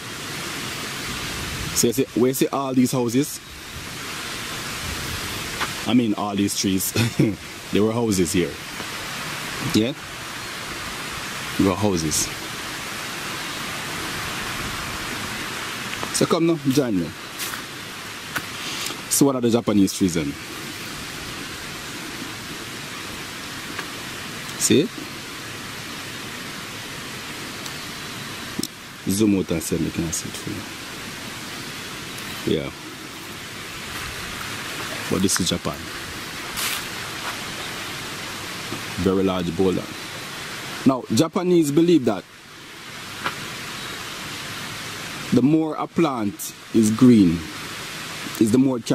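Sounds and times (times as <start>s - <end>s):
steady hiss: 0.0s - 48.9s.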